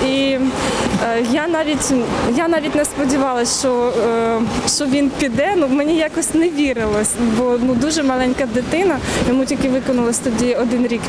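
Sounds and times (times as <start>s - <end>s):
woman talking: 0.0s - 11.0s.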